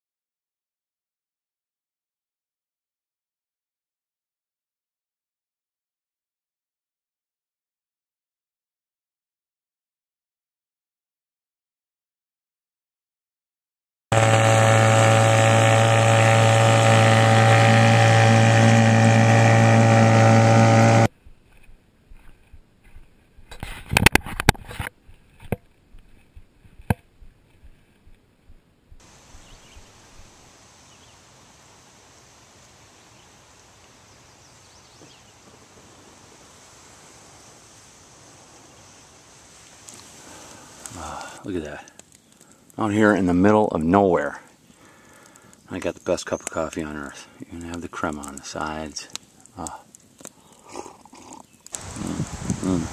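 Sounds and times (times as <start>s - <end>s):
motor running: 14.1s - 21.1s
faint steady hiss: 19.0s - 52.9s.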